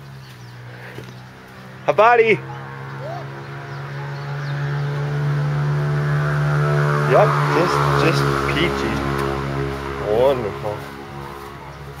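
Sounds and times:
motor droning hum: 0.0 - 12.0.

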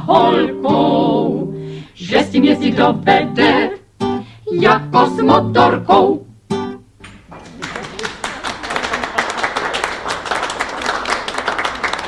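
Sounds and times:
audience applause: 7.2 - 12.0.

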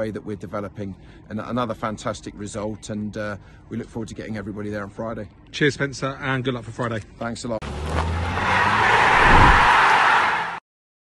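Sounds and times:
rushing whoosh: 8.7 - 10.2.

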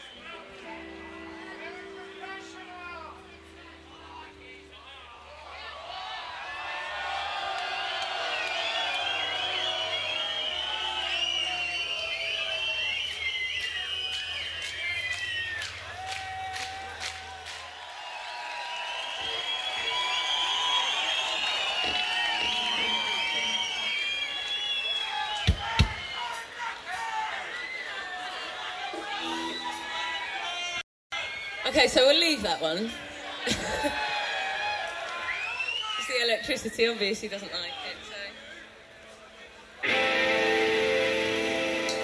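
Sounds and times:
crowd shouting and cheering: 0.0 - 42.0.

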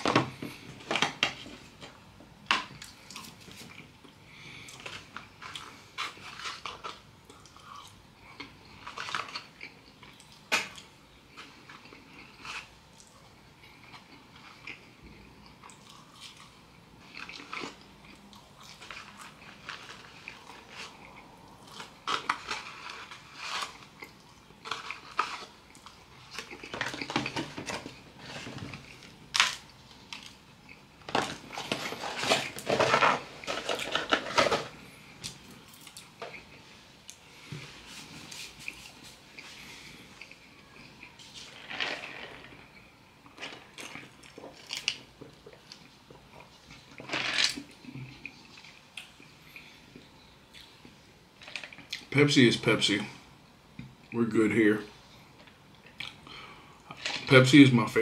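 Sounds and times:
person chewing food: 0.0 - 52.1, 55.1 - 57.2.

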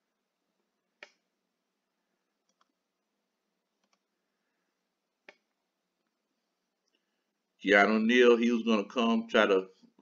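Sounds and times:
computer mouse click: 1.0 - 1.2, 2.4 - 2.8, 3.8 - 4.1, 5.2 - 5.6.

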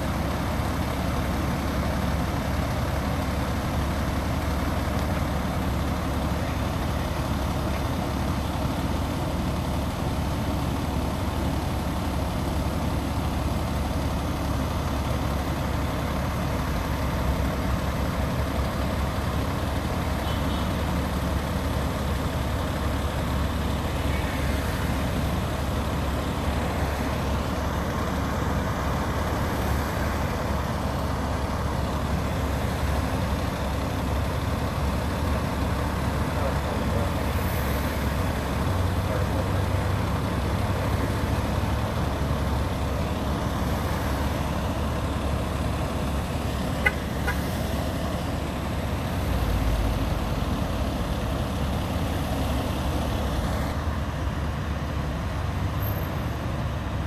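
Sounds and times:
diesel fire engines idling: 0.0 - 57.0.

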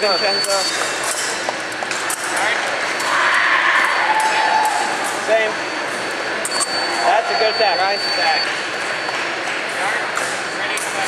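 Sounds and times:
steady high beep: 0.0 - 0.9, 5.3 - 11.0.

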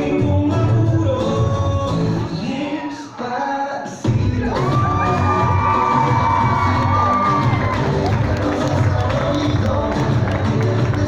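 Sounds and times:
dance music with heavy bass: 0.0 - 11.0
crowd cheering and shouting: 4.2 - 10.9.

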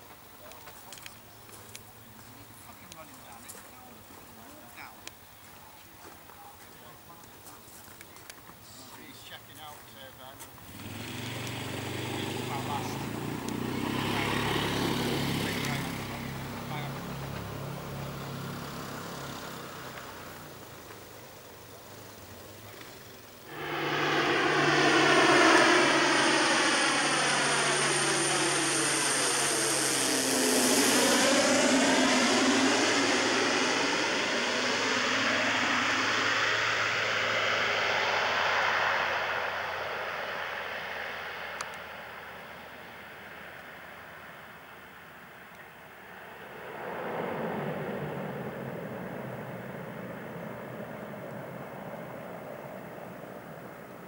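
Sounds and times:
propeller plane passing: 11.1 - 44.7, 45.7 - 54.0.

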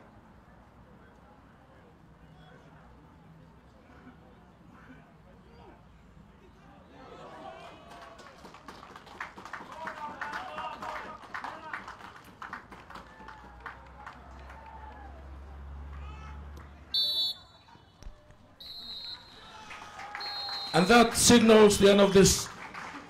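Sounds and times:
referee's whistle: 16.9 - 18.0, 18.6 - 22.4.

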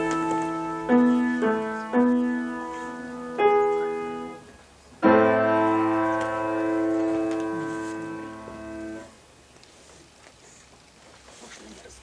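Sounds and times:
grand piano chords: 0.0 - 9.2.

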